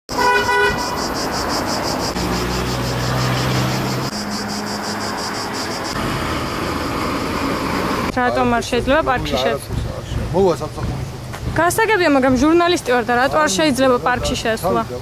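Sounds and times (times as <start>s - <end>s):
vehicle horn toot: 0.1s - 1.0s
traffic noise: 0.1s - 15.0s
vehicle engine humming: 0.1s - 15.0s.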